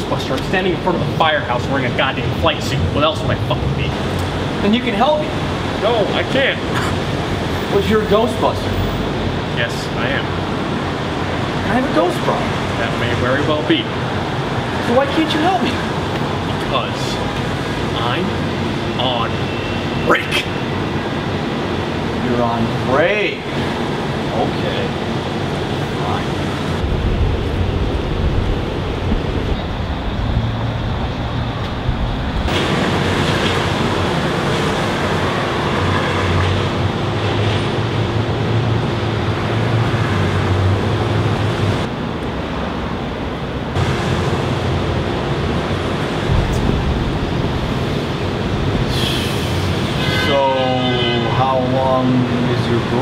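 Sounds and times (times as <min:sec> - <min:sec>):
heavy vehicle rumble: 0:02.4 - 0:50.2.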